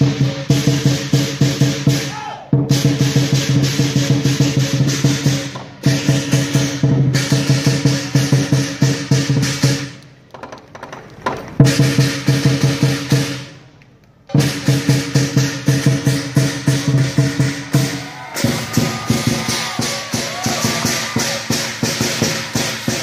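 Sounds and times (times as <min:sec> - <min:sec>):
drum cymbals and gong ensemble: 0:00.0 - 0:10.0, 0:11.6 - 0:13.6, 0:14.3 - 0:23.0.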